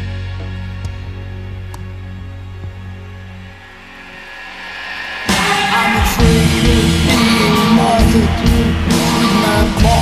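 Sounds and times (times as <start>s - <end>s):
low synth tones: 0.0s - 8.6s
hissing swell: 2.9s - 9.1s.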